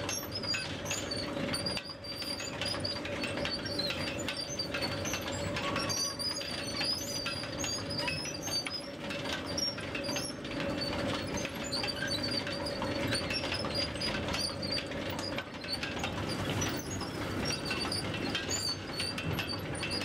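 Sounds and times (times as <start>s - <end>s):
conveyor hum: 0.0s - 20.0s.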